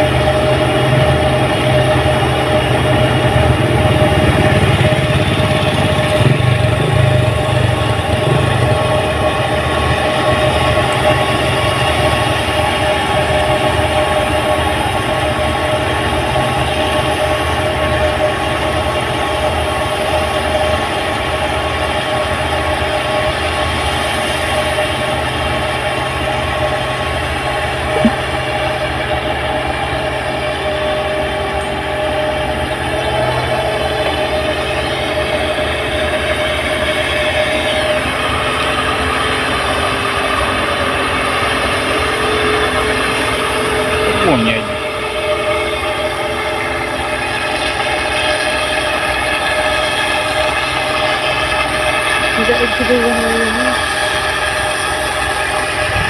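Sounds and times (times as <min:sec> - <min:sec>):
combine harvester engine drone: 0:00.0 - 0:56.0.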